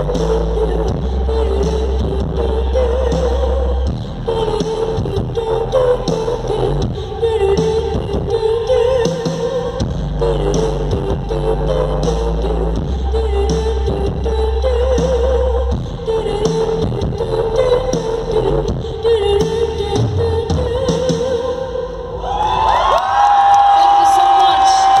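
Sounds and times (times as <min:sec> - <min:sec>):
crowd cheering and clapping: 0:22.2 - 0:25.0.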